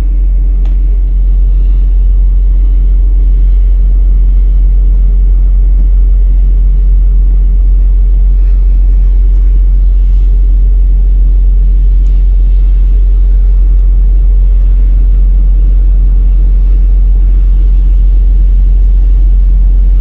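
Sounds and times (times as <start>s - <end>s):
ship diesel engines droning: 0.0s - 20.0s.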